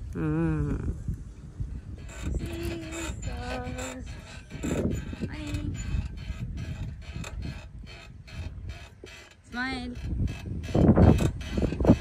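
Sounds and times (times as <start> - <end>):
seesaw creaking and knocking: 1.8 - 12.0
seesaw squeaks: 1.8 - 12.0.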